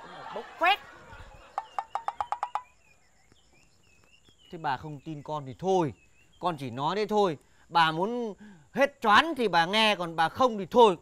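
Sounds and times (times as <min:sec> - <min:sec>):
faint small bird chirps: 0:01.2 - 0:08.2.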